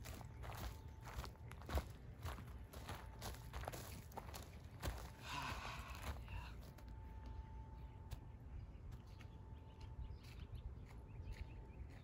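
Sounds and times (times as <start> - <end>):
footsteps on wood-chip mulch: 0.0 - 12.0.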